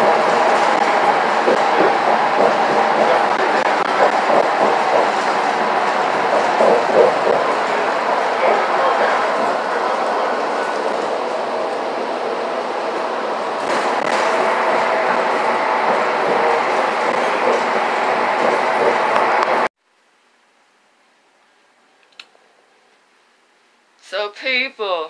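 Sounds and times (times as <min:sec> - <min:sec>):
transit vehicle running noise: 0:00.0 - 0:19.7.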